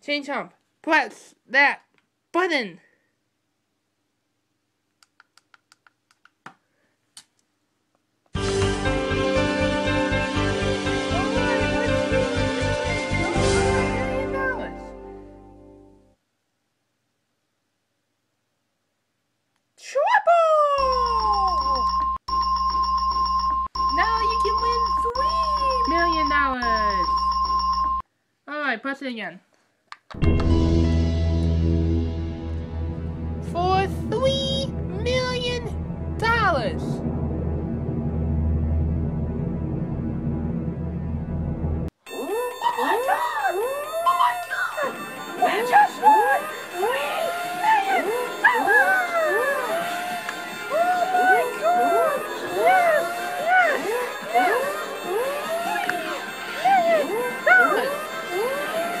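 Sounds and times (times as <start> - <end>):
tense music: 8.4 - 15.9, 30.2 - 59.0
high beep tone: 20.9 - 28.0
low droning pulse: 33.1 - 41.9
people whooping and screaming: 42.1 - 59.0
sliding voice-like wails: 42.1 - 59.0.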